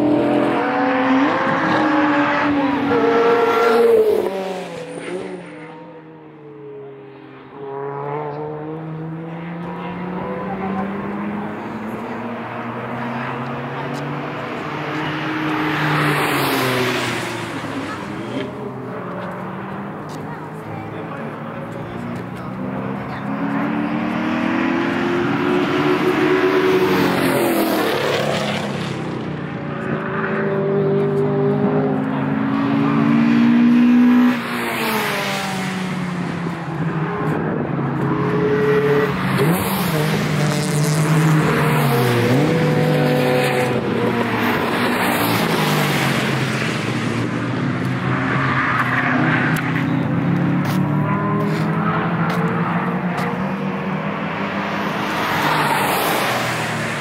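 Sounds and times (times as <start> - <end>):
race cars accelerating: 0.0 - 57.0.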